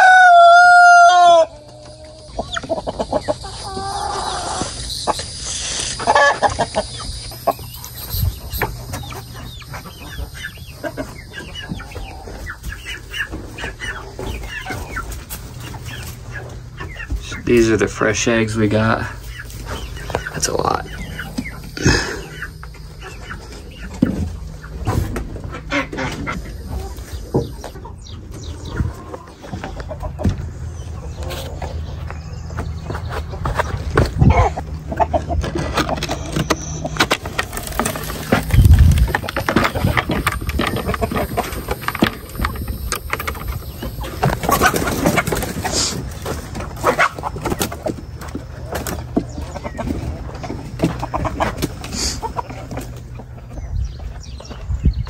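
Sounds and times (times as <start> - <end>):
chickens clucking: 0.0 - 55.0
knocks and clatter of wooden coop: 22.8 - 26.4, 27.3 - 30.6, 32.6 - 53.4.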